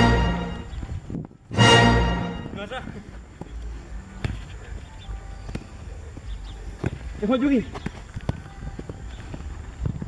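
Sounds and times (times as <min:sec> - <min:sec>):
background music: 0:00.0 - 0:02.8
football kicked on artificial turf: 0:04.2 - 0:04.5, 0:05.4 - 0:07.2.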